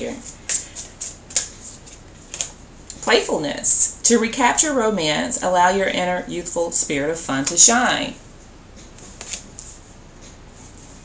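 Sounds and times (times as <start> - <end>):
cards rustling: 0.2 - 2.6, 8.8 - 9.8.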